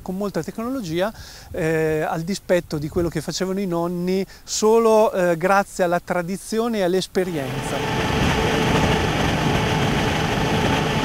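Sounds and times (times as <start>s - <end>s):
grape harvester machinery drone: 7.3s - 11.0s.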